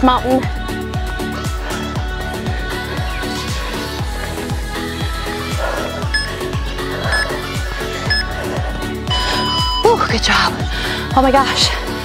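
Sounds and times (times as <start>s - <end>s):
interval timer beeps: 6.2s - 6.4s, 9.1s - 10.0s.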